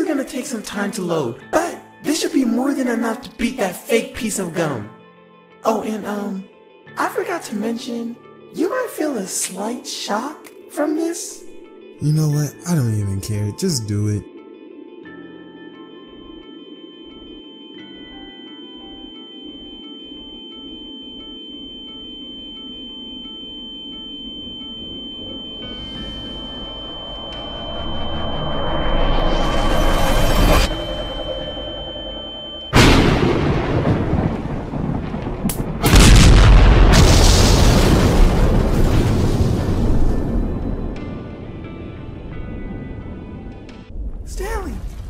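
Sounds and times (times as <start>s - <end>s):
steady high tone: 12.0s - 14.2s, 16.5s - 33.5s.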